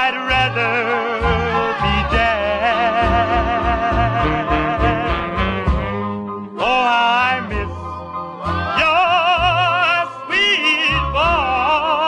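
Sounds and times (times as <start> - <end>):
vocal group rhythm and blues song: 0.0 - 12.0.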